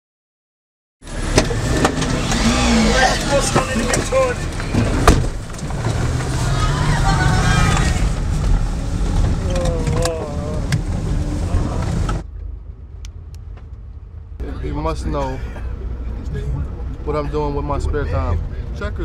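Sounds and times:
muffled hum inside bus: 1.0 - 19.0
vehicle engines rumbling: 1.0 - 19.0
voices calling: 2.0 - 8.4.

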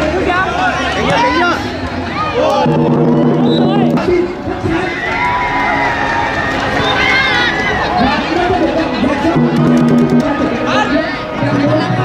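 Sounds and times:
crowd noise: 0.0 - 12.0
people shouting: 1.0 - 11.2.

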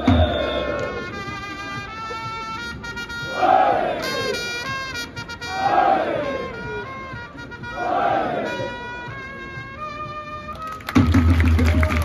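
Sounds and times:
trumpets playing cheer song: 0.0 - 12.0
crowd shouting a chant: 3.3 - 4.5, 5.5 - 6.6, 7.7 - 8.8.

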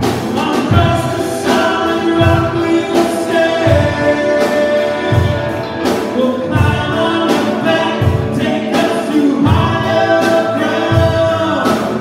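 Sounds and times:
drum kit: 0.0 - 12.0
electric guitar: 0.0 - 12.0
voices singing together: 0.2 - 12.0.

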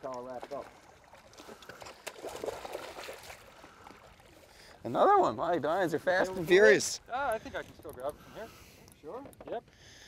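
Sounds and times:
fish thrashing and splashing: 0.2 - 4.5.

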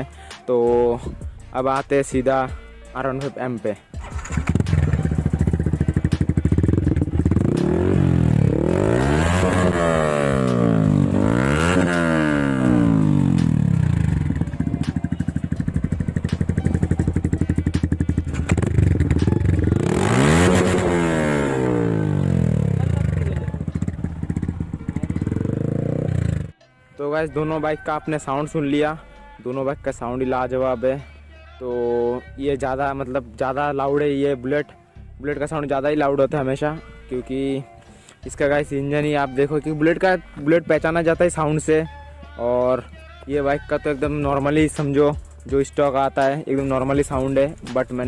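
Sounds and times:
motorcycle engine idling and revving: 4.0 - 26.6, 43.5 - 48.0.

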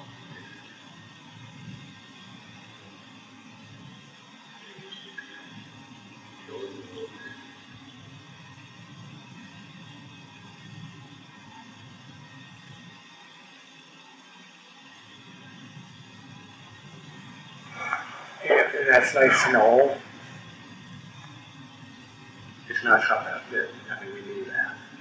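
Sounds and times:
tape hiss and hum: 0.0 - 25.0
man speaking: 17.8 - 20.0, 22.7 - 24.8.

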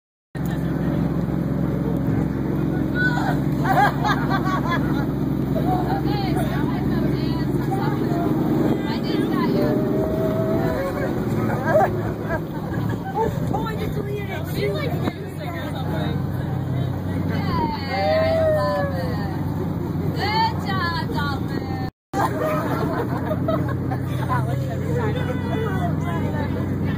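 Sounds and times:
boat engine droning: 0.4 - 26.9
people's voices: 0.4 - 26.9.

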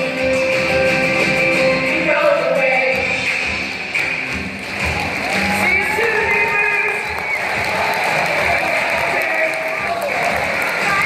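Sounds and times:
audience applauding and cheering: 3.1 - 11.0.

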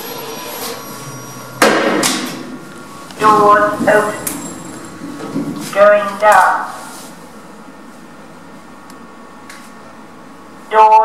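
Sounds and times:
lift machinery hum and hiss: 0.0 - 10.8.

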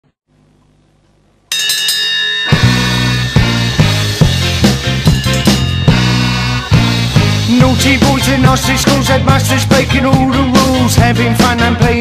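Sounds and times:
high sustained ringing tones: 1.5 - 6.9
live ska band music: 2.6 - 12.0.

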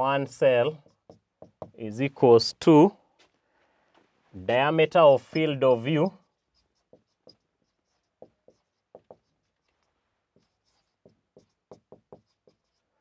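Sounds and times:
marker squeaking on whiteboard: 0.3 - 1.8, 5.2 - 13.0.

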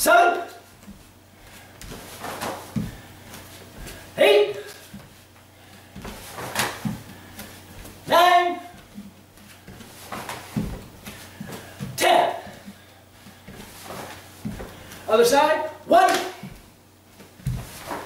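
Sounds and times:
man shouting: 0.0 - 0.7, 4.2 - 4.8, 8.1 - 8.8, 12.0 - 12.6, 15.1 - 16.5
bare feet on wooden floor: 0.5 - 15.1, 16.1 - 18.0.

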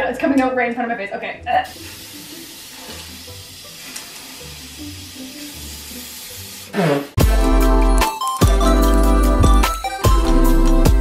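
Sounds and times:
loud music: 6.7 - 11.0.

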